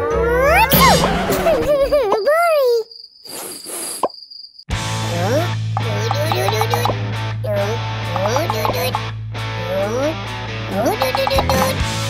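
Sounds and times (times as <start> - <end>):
squeaky cartoon gibberish voices: 0.0 - 2.9, 5.1 - 9.0, 9.6 - 11.9.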